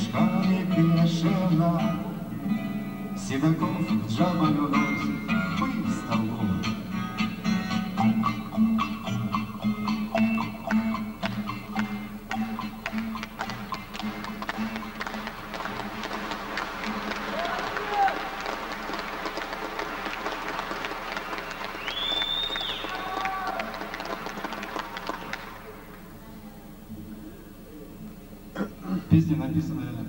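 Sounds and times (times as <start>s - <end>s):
acoustic guitar notes: 0.0s - 16.2s
audience applause: 12.8s - 26.2s
audience shouting: 15.7s - 19.2s, 19.9s - 25.8s
whistle-like call: 21.3s - 23.6s.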